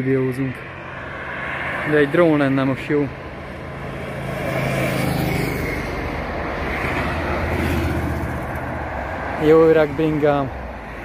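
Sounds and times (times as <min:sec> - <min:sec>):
road traffic rush: 0:00.0 - 0:11.0
motorcycle passing: 0:03.3 - 0:09.2.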